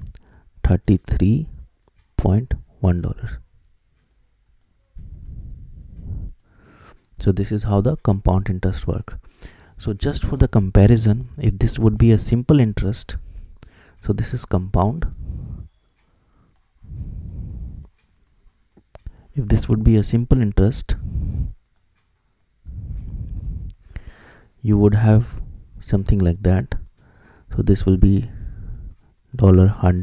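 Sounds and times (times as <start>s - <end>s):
person speaking: 0.0s - 3.6s, 7.2s - 15.7s, 18.8s - 21.6s, 22.6s - 30.0s.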